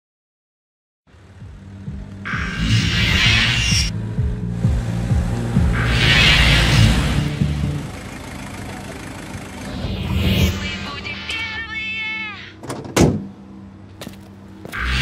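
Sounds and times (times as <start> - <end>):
engine rumble: 1.1 - 15.0
hissing swells: 2.3 - 3.9, 5.5 - 7.8
intro music: 3.9 - 11.0.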